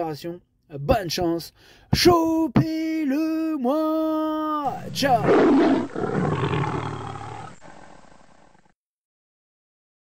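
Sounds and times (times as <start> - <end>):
roar-like sound effect: 4.7 - 8.7.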